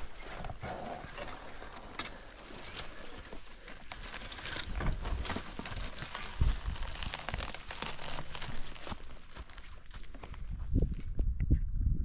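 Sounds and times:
crunching through dry scrub: 0.0s - 11.2s.

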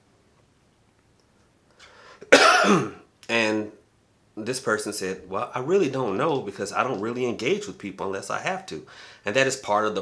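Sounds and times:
man clearing his throat: 2.2s - 3.0s.

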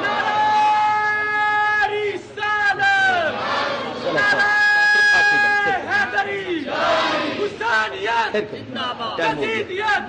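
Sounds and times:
crowd of men shouting: 0.0s - 8.3s
man calling over loudspeaker: 0.3s - 3.3s, 4.0s - 6.6s, 7.4s - 10.0s.

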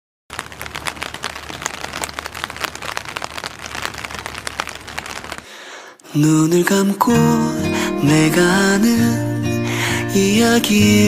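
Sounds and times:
dense crackling clicks: 0.3s - 6.1s.

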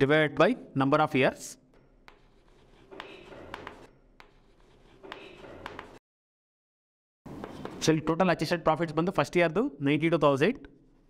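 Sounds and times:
chalk taps: 1.9s - 6.0s, 7.3s - 7.9s
chalk scratching on blackboard: 2.0s - 6.0s.

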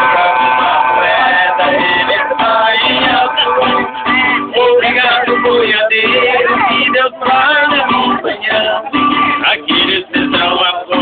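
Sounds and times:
buzzy homemade horn melody: 0.0s - 5.7s
strummed acoustic guitar: 0.0s - 11.0s.

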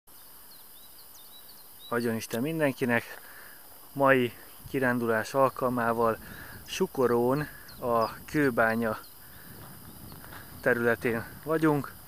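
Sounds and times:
bird chirping: 0.1s - 12.0s
open-air background hiss: 0.1s - 12.0s.

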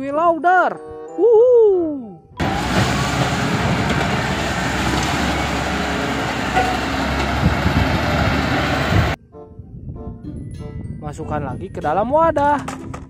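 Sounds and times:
diesel engine running: 2.4s - 9.2s.

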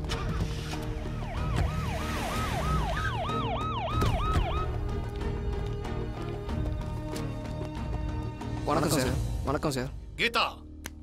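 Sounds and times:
police siren yelping: 0.0s - 5.0s
background music: 0.0s - 11.0s.

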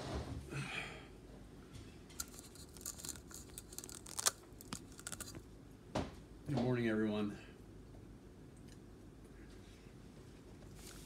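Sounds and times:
camera handling clicks and scrapes: 2.2s - 5.4s.

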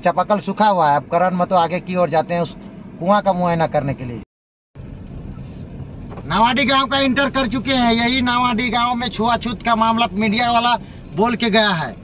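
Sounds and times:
car driving on dirt road: 0.0s - 4.2s, 4.8s - 12.0s.

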